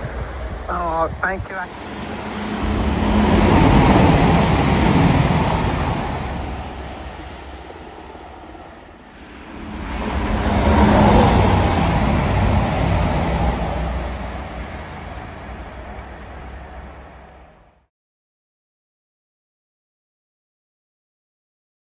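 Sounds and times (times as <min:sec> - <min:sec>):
passenger trains passing: 0:00.0 - 0:17.8.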